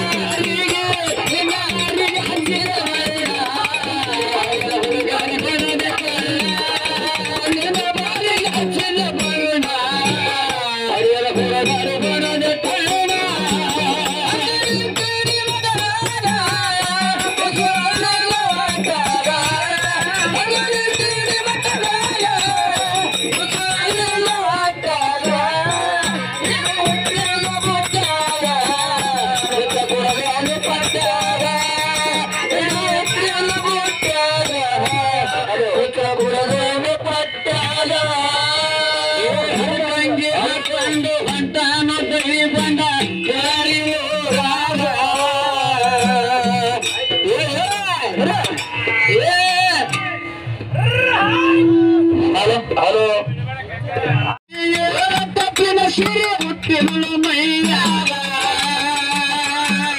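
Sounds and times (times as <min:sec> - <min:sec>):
man singing folk song: 0:00.0 - 0:48.5, 0:54.4 - 0:59.9
beating percussion: 0:00.0 - 0:59.9
jingling cymbals: 0:11.3 - 0:35.4, 0:37.6 - 0:50.4.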